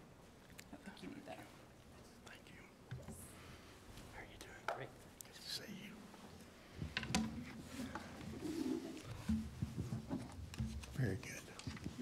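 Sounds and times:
faint whispered talk: 0:00.6 - 0:03.4, 0:04.0 - 0:06.2.

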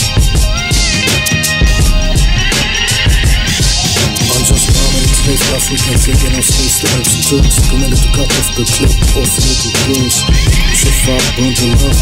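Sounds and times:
rapping over a drum beat: 0:00.0 - 0:12.0.

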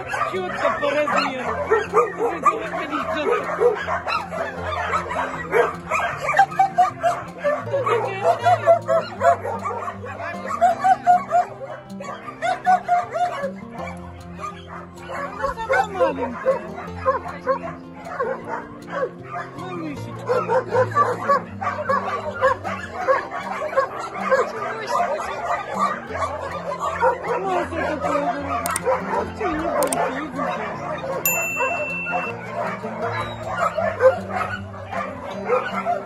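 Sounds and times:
background music with low notes: 0:00.0 - 0:36.0
puppies whining and yipping: 0:00.0 - 0:36.0.

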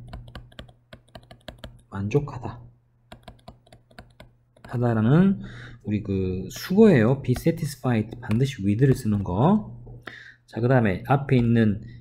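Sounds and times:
stylus tapping on tablet screen: 0:00.0 - 0:01.9, 0:03.1 - 0:04.9, 0:07.3 - 0:09.2.

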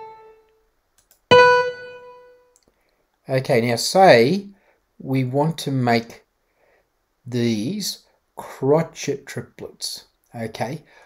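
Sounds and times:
single piano note: 0:00.0 - 0:00.4, 0:01.3 - 0:02.4.

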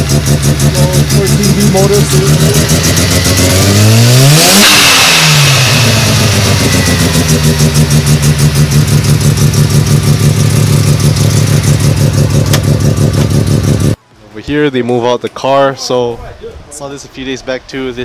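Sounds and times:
rotary engine revving and idling: 0:00.0 - 0:14.0.

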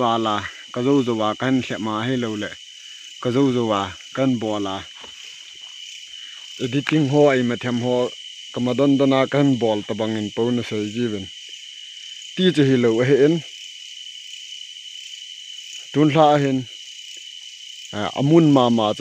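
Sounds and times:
man speaking: 0:00.0 - 0:02.6, 0:03.2 - 0:05.1, 0:06.6 - 0:11.3, 0:12.4 - 0:13.5, 0:15.9 - 0:16.7, 0:17.9 - 0:19.0
crickets chirping: 0:00.0 - 0:19.0.

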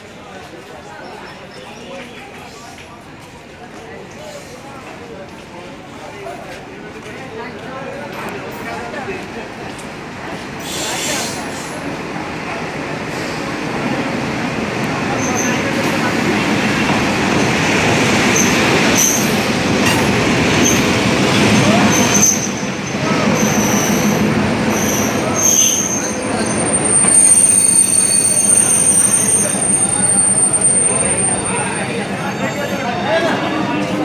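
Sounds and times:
train rumbling: 0:01.9 - 0:34.0
train wheel clatter: 0:14.9 - 0:31.8
wheel and brake squeals: 0:24.7 - 0:32.9.

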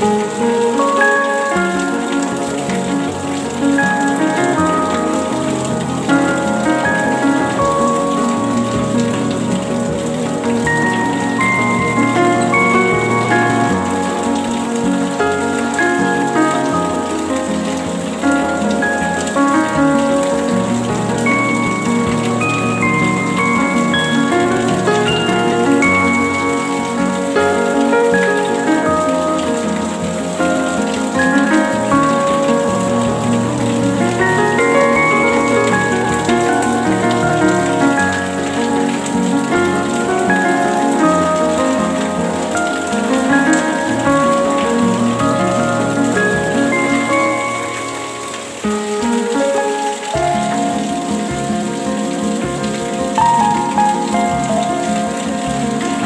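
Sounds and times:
gentle instrumental music: 0:00.0 - 0:56.0
steady rain: 0:00.0 - 0:56.0.

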